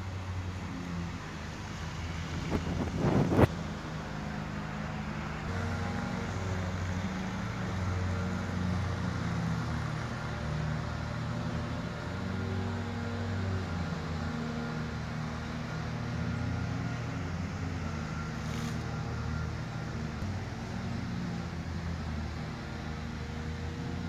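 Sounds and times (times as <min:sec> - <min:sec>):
wind buffeting microphone: 0:02.2 - 0:03.5.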